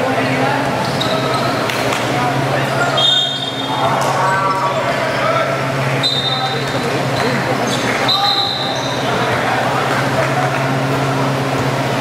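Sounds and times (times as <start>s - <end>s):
voices calling out: 0.7s - 11.5s.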